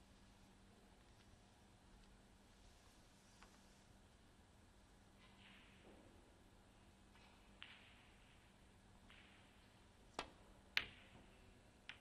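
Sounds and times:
sharp click of balls colliding: 7.1s - 12.0s.

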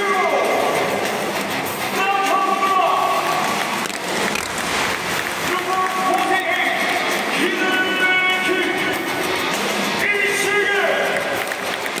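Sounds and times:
crowd din: 0.0s - 12.0s
announcer over loudspeaker: 2.0s - 3.5s, 5.4s - 9.1s.

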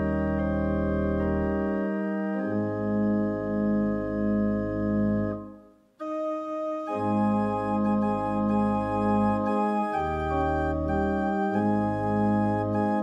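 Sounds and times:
organ playing hymn chords: 0.0s - 13.0s.

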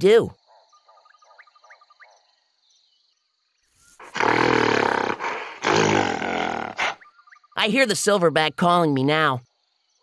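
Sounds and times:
insect and bird chirps: 0.0s - 10.0s.

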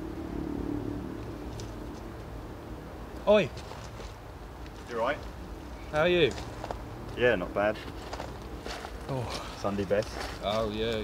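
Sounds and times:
passing vehicle engine hum: 0.0s - 10.7s
low outdoor rumble: 0.0s - 11.0s.

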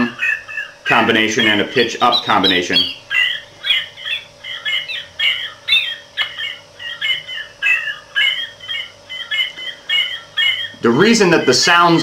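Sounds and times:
faint electronic hum: 0.0s - 12.0s.

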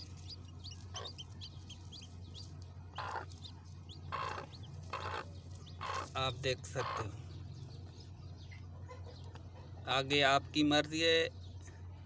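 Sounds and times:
chicks peeping: 0.0s - 10.3s.

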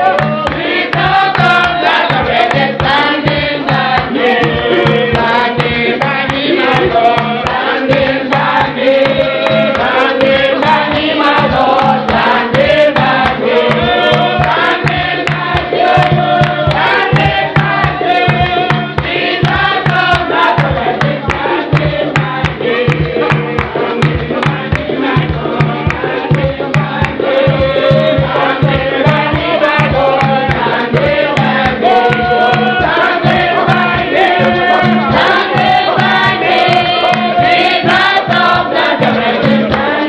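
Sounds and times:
group singing a hymn: 0.0s - 40.0s
sharp percussive strokes: 0.0s - 40.0s
steady low beat: 0.0s - 40.0s.

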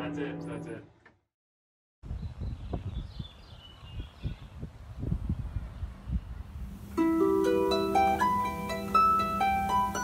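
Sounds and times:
bird chirps: 2.1s - 4.6s.

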